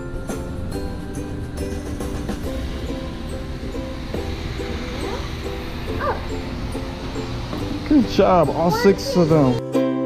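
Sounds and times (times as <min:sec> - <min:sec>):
music with short repeated notes: 0:00.0 - 0:10.0.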